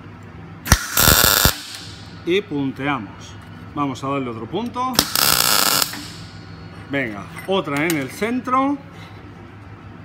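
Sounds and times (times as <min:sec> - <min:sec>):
welding arc crackling: 0:00.7 - 0:02.1, 0:05.0 - 0:06.3.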